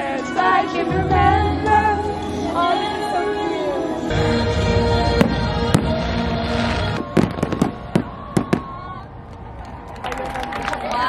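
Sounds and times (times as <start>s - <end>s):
music: 0.0s - 8.6s
fireworks bangs and cracks: 5.2s - 8.8s.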